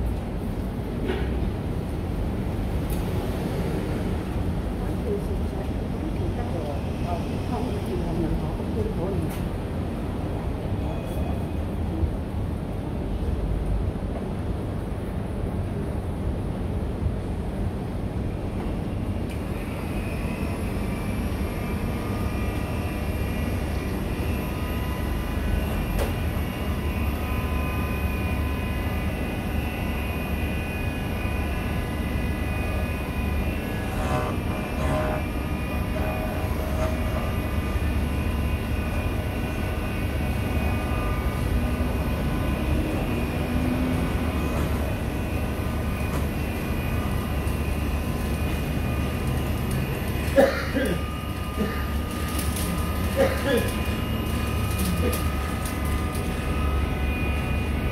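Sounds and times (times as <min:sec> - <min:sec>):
key-cutting machine humming and whining: 0:19.0 - 0:57.9.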